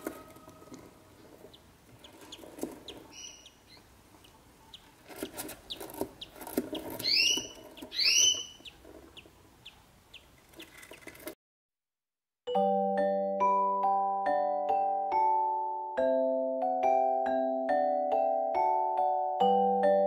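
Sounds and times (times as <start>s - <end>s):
rustling in nest box: 0.0s - 3.8s, 4.7s - 9.3s
budgies peeping: 0.0s - 11.3s.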